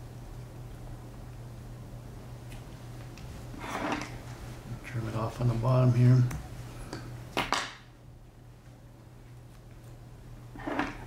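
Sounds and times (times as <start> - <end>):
man speaking: 4.7 - 6.4.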